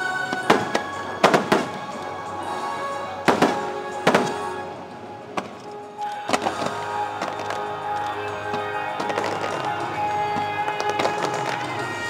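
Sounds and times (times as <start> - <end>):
soundtrack music: 0.0 - 12.0
fireworks bursting in sharp bangs: 3.3 - 4.5, 8.5 - 12.0.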